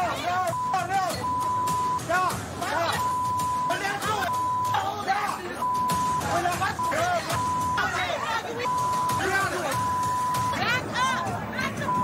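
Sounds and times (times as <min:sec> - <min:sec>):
people yelling: 0:00.0 - 0:12.0
censor bleep tone: 0:00.5 - 0:02.1, 0:03.0 - 0:04.8, 0:05.6 - 0:06.2, 0:06.8 - 0:07.9, 0:08.7 - 0:09.2.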